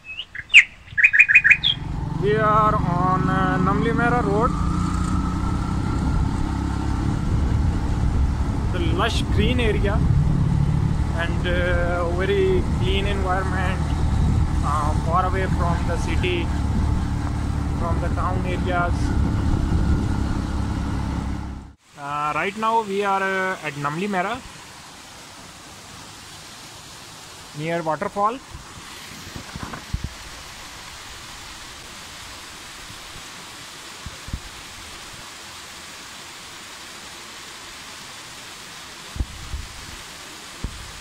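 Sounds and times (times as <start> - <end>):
songbird chirping: 0.0 - 3.6
road rumble: 0.0 - 35.0
motorcycle engine running: 1.4 - 21.8.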